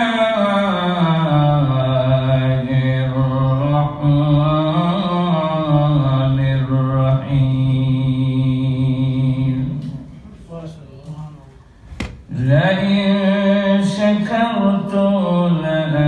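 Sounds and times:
man chanting melodic recitation: 0.0s - 10.0s, 12.3s - 16.0s.

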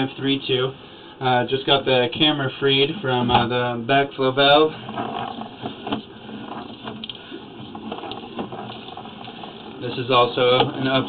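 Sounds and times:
cable clicking and rattling in pipe: 4.7s - 11.0s.

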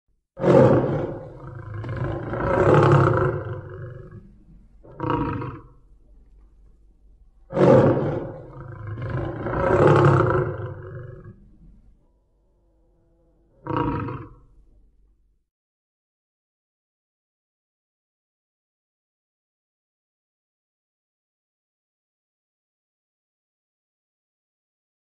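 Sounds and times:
tiger roaring: 0.4s - 5.8s, 7.4s - 11.8s, 12.4s - 14.6s.

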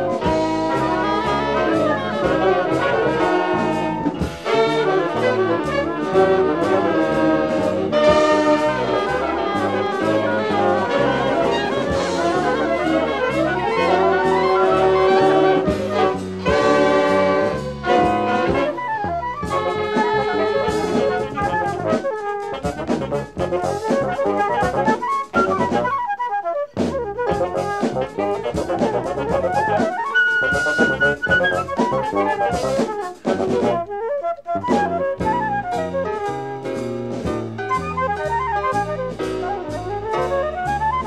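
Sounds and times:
jazz horn section playing: 0.0s - 41.0s.

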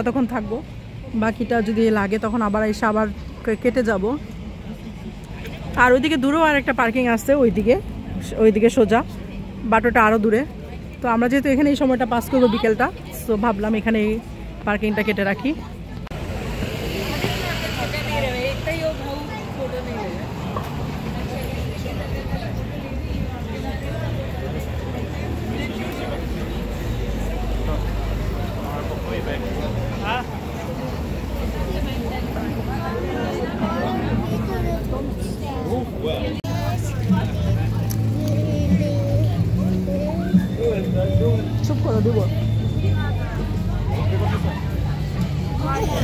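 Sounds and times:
street chatter: 0.0s - 46.0s
traffic noise: 0.0s - 46.0s
voices of passers-by: 0.0s - 46.0s
low vehicle engine hum: 15.6s - 46.0s
young child's voice: 34.3s - 35.7s, 38.1s - 40.5s.

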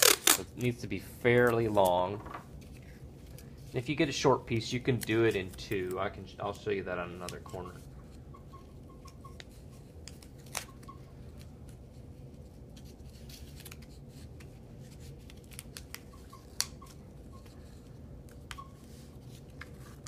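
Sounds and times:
sharp tape snaps: 0.0s - 0.7s, 15.3s - 16.8s
tape crackling on cardboard: 0.0s - 3.8s, 4.5s - 6.1s, 9.4s - 20.0s
low room hum: 0.0s - 20.0s.

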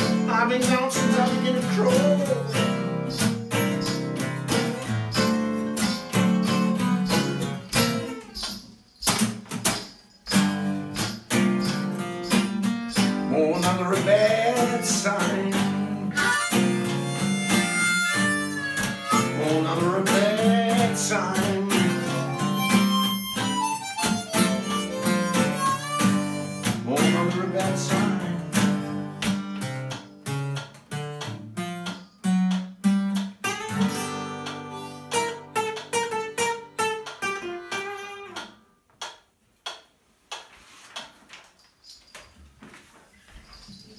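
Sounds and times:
acoustic guitars: 0.0s - 38.9s
blues harmonica: 0.9s - 8.4s, 14.6s - 29.8s, 33.4s - 38.4s.

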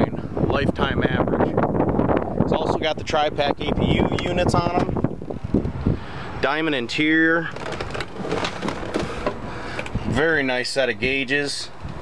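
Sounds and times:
camera handling rustling: 7.5s - 10.0s.

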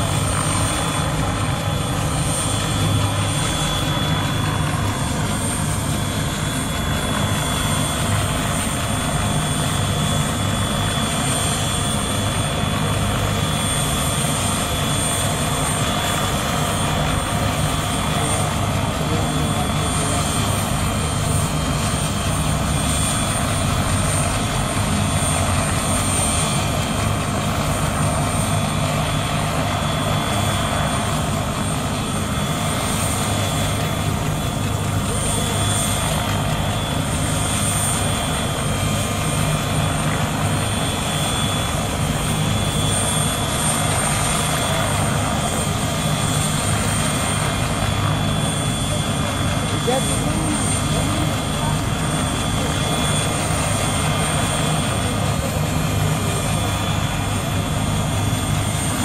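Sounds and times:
helicopter rotor and engine noise: 0.0s - 59.0s.

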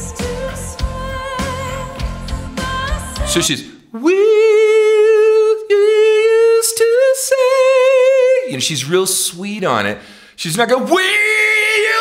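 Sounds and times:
man singing a long high note: 3.0s - 8.5s.

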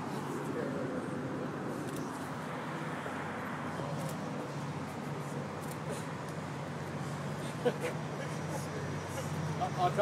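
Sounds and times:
steady outdoor rush: 0.0s - 10.0s.

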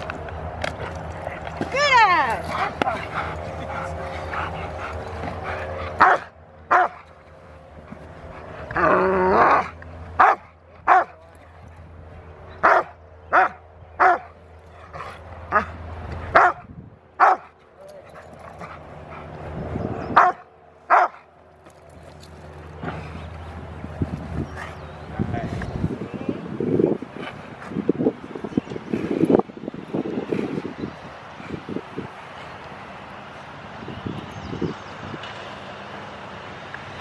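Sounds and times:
dog barking: 6.0s - 7.0s, 10.2s - 11.2s, 12.6s - 14.3s, 16.4s - 16.6s, 17.2s - 17.5s, 20.2s - 21.2s.

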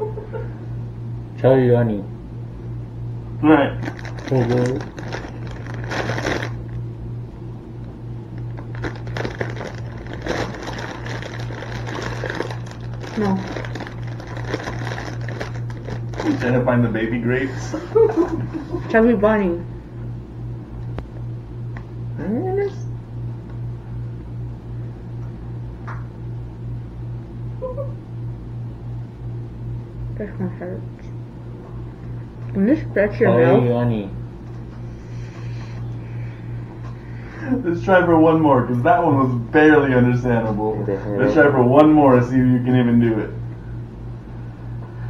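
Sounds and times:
steady low hum: 0.0s - 45.0s
plastic bag crinkling: 3.8s - 6.8s, 8.4s - 16.6s.

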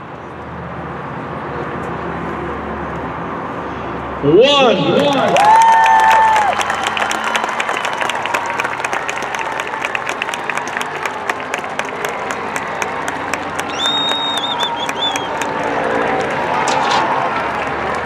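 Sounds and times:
crowd applauding and cheering: 4.5s - 18.0s.

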